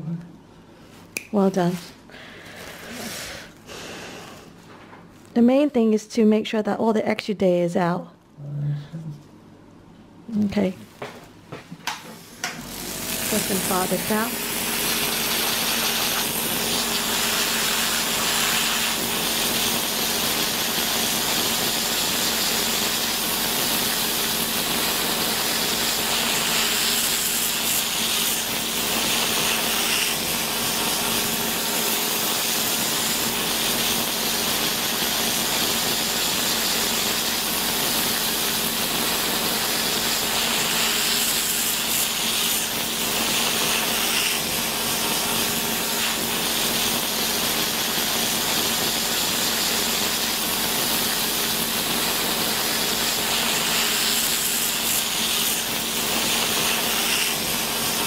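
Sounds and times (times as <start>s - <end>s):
electric nail drill grinding: 12.2s - 58.0s.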